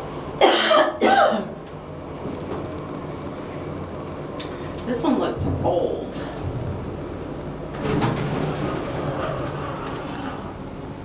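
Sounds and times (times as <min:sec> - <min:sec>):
low steady hum: 0:00.0 - 0:11.0
person coughing: 0:00.4 - 0:01.6.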